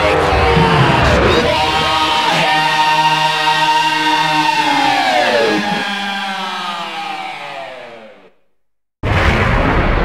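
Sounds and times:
heavy metal held notes: 0.0 - 6.7
loud music track: 0.0 - 8.0.

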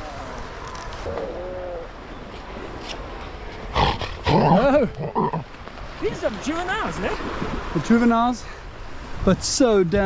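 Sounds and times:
seal growling: 1.0 - 2.0, 3.7 - 5.5.

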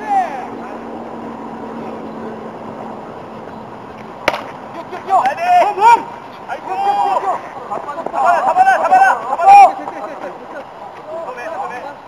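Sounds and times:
background murmur: 0.0 - 12.0
bat cracking on ball: 4.2 - 4.6.

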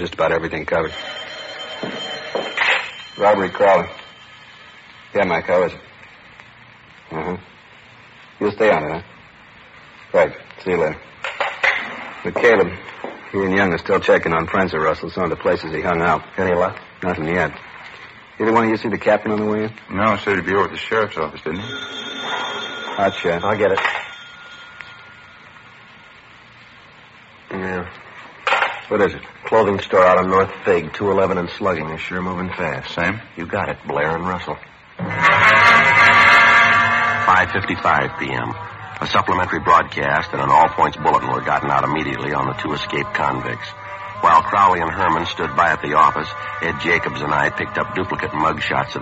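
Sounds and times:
old radio recording hiss: 0.0 - 49.0
telephone ringing: 0.8 - 5.3, 21.5 - 25.6.

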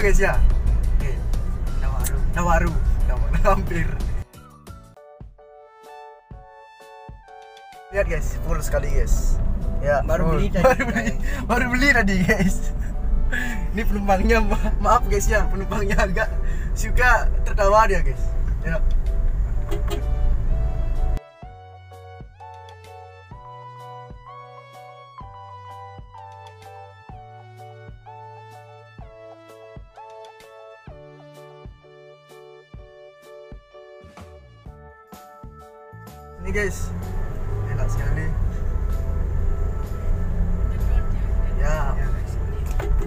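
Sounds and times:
car engine and road rumble: 0.0 - 4.3, 8.0 - 21.2, 36.4 - 43.0.

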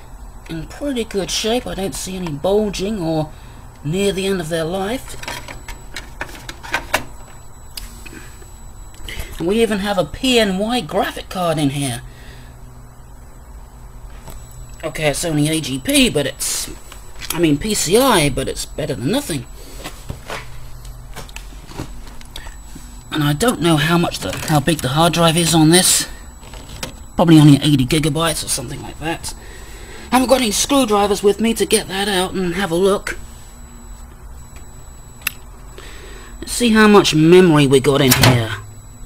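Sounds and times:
low steady hum: 0.0 - 39.0.

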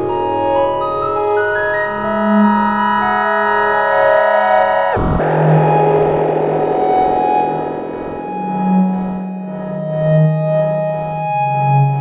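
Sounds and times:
synthesizer chord: 4.5 - 10.6
grainy noisy synth texture: 4.8 - 10.1
synth downward swoop: 4.9 - 10.2.

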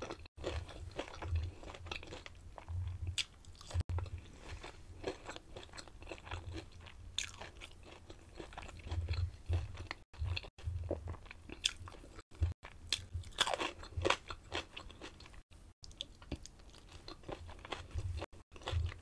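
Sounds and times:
chewing crunchy fried food: 0.0 - 19.0.

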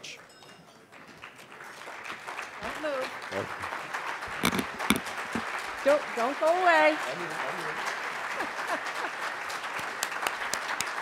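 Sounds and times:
audience applause: 0.9 - 11.0
microphone knocks: 4.4 - 5.5.

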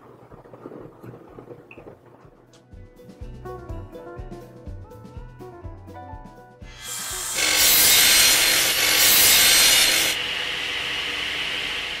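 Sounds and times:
saw cutting wood: 6.7 - 12.0.

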